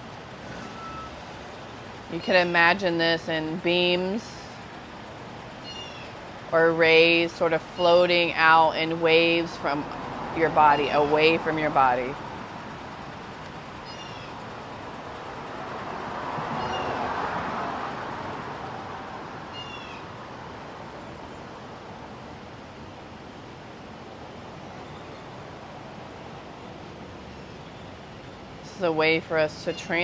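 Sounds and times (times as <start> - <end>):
street background hum: 0.0 - 30.0
vehicle passing: 0.0 - 30.0.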